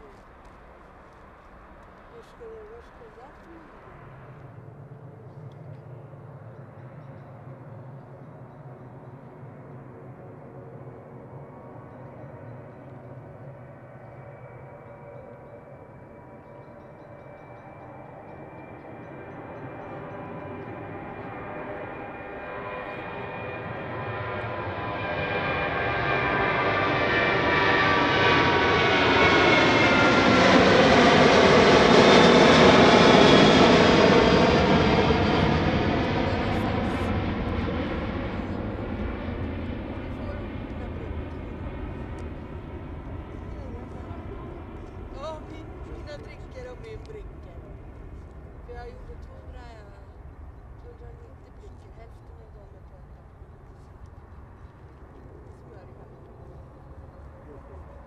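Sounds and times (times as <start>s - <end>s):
jet airliner taking off: 17.2s - 52.8s, 53.4s - 58.0s.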